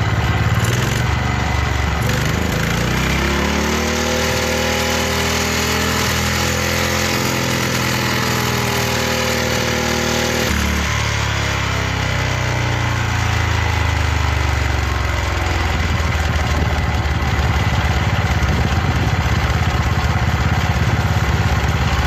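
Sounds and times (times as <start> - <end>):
small engine revving: 0.0 - 19.3.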